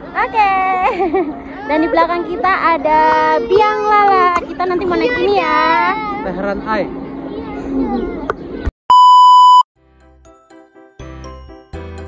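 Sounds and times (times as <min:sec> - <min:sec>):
outdoor crowd noise: 0:00.0 - 0:08.7
electronic beep tone: 0:08.9 - 0:09.7
soft music: 0:09.8 - 0:12.0.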